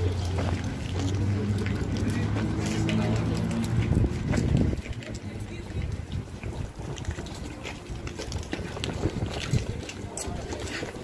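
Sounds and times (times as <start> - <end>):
indistinct voices: 0.0 - 11.0
wind buffeting microphone: 2.4 - 11.0.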